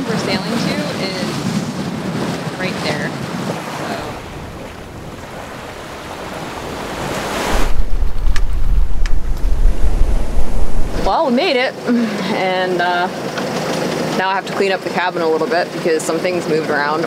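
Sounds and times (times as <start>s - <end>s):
wind buffeting microphone: 0.0s - 11.5s
choppy water rushing: 0.0s - 17.0s.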